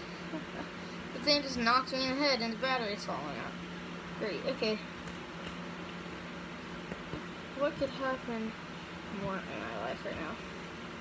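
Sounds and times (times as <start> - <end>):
electric fan humming: 0.0 - 11.0.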